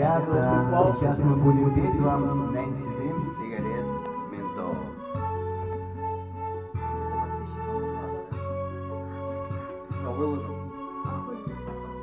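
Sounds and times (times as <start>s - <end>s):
bass line: 0.0s - 12.0s
electronic organ chords: 0.0s - 12.0s.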